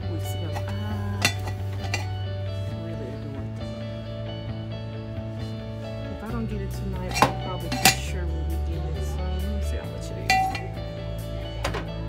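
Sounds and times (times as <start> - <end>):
background music: 0.0 - 12.0
ceramic lid clinking against jar: 0.5 - 2.2, 7.1 - 8.1, 10.2 - 10.8.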